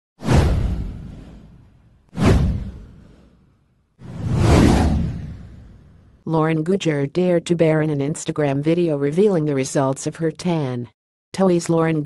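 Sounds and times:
whoosh sound effects: 0.2s - 6.2s.

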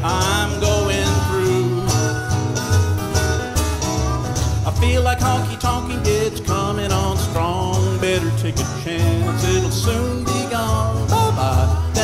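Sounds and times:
harmonica: 0.0s - 7.1s, 8.1s - 12.0s
strummed acoustic guitars: 0.0s - 12.0s
upright bass: 0.0s - 12.0s.

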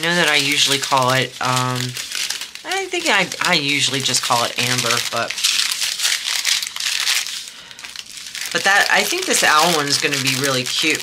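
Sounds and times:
plastic crinkling: 0.0s - 11.0s
tiny drills rattling in packets: 0.0s - 11.0s.

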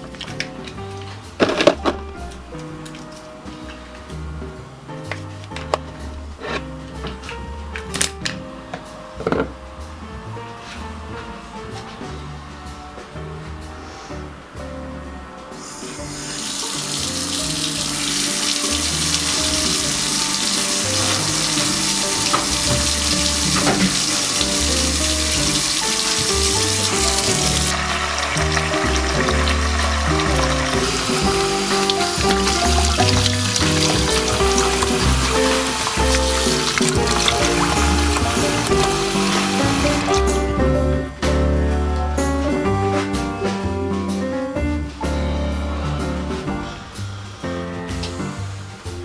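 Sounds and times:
tap water running into plastic basin: 16.0s - 40.5s.

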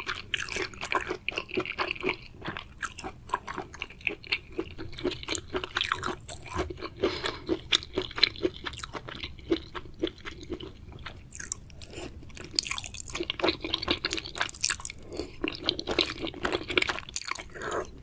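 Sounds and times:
chewing crunchy wet food: 0.0s - 18.0s.

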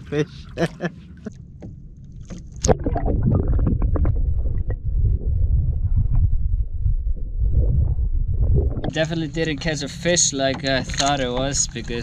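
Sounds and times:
muffled underwater rumble: 0.0s - 12.0s.

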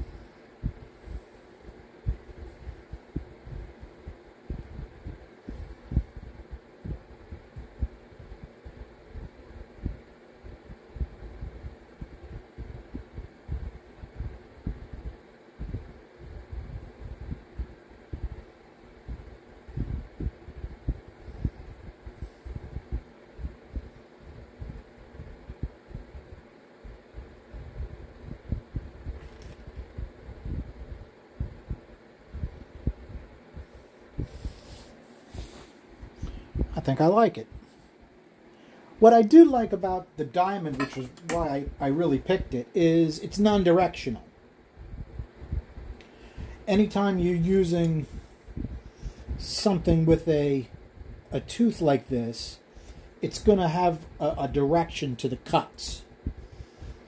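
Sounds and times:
dull low thumps: 0.0s - 1.2s, 2.0s - 36.8s, 44.6s - 46.7s, 48.0s - 49.9s, 56.2s - 56.6s
steady low hum: 0.0s - 57.0s.

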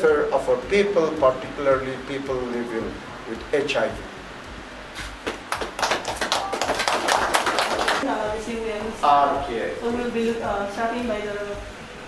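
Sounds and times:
people applauding: 5.2s - 8.0s.

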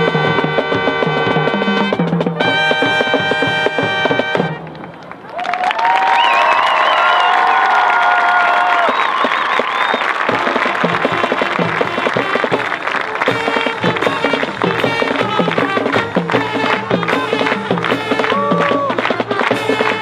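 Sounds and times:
drum cadence: 0.0s - 5.0s, 9.2s - 20.0s
marching band brass chord: 0.0s - 5.0s, 10.2s - 20.0s
crowd applauding and cheering: 4.7s - 20.0s
whoops and whistles: 5.3s - 10.3s.

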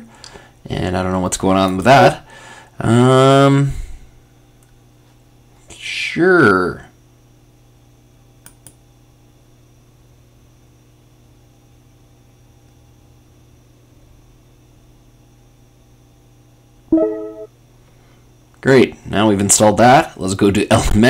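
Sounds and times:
short loud pitched sound: 16.9s - 17.5s
low steady hum: 16.9s - 17.6s.

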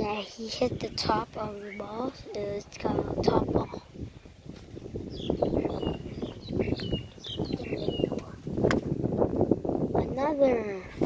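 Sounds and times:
birds chirping: 0.0s - 9.3s
wind noise on microphone: 0.0s - 11.0s.

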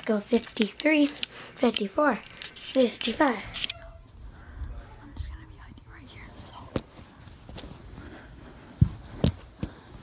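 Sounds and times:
person whispering: 4.3s - 6.9s
cloth rustling: 6.7s - 10.0s.

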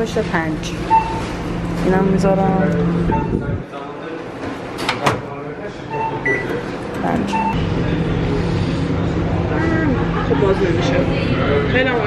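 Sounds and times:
microwave oven humming: 0.0s - 3.6s, 5.3s - 12.0s
keypad beeps: 0.9s - 1.3s, 3.1s - 3.4s, 5.9s - 6.6s.

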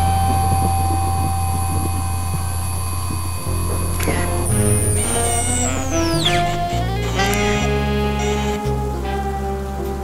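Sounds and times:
high-pitched whine: 0.0s - 8.9s
low drone: 0.0s - 10.0s.

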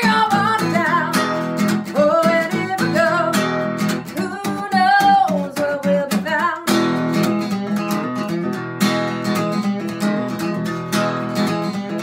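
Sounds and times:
woman singing: 0.0s - 7.1s
acoustic guitar strumming: 0.0s - 12.0s.

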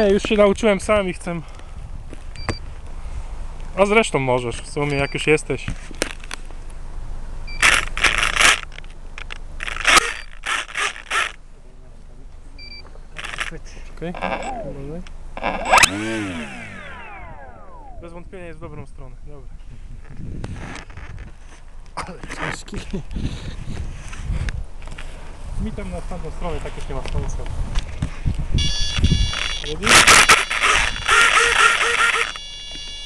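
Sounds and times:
electric motor whine: 14.2s - 18.2s, 28.6s - 33.0s.

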